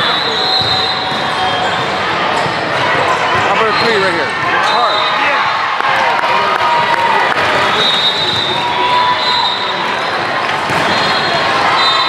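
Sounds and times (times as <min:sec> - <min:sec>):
crowd voices echoing in gym: 0:00.0 - 0:12.0.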